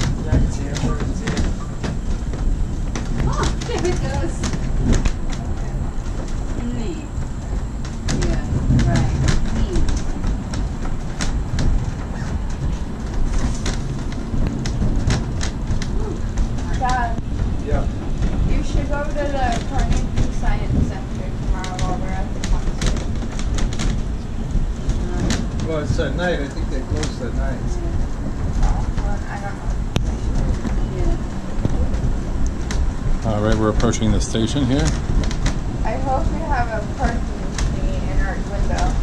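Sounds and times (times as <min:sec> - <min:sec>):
voices: 0:00.0 - 0:02.0, 0:03.1 - 0:10.4, 0:15.8 - 0:23.2, 0:24.1 - 0:32.5, 0:33.2 - 0:35.0, 0:35.8 - 0:39.0
funicular car rumbling: 0:00.0 - 0:39.0
rattles and clicks: 0:00.0 - 0:39.0.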